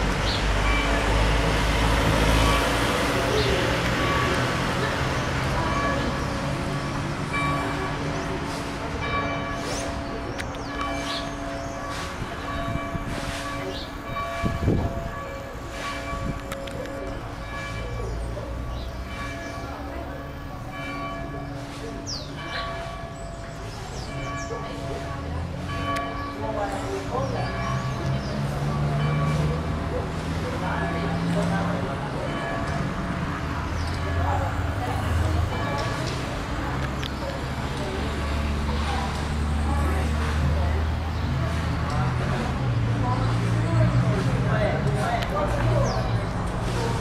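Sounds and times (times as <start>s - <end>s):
church bells ringing: 0.0s - 47.0s
road traffic rumble: 0.0s - 47.0s.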